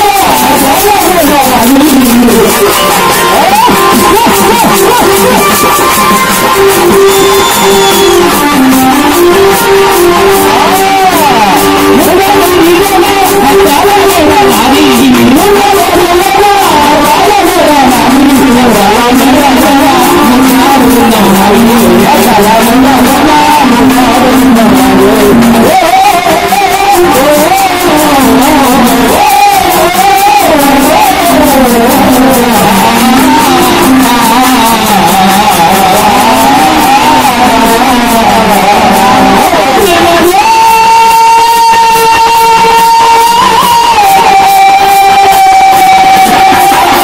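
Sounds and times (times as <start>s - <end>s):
man singing through microphone: 0.0s - 47.0s
steady drum beat: 0.0s - 47.0s.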